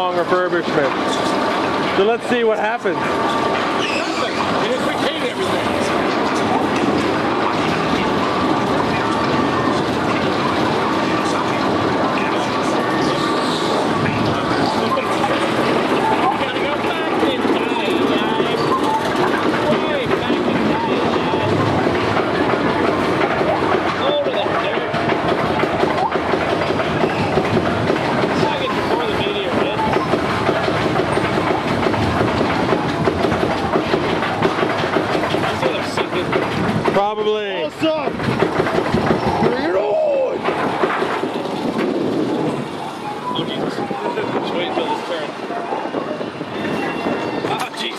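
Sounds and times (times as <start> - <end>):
roller coaster wheels rattling on track: 0.0 - 47.9.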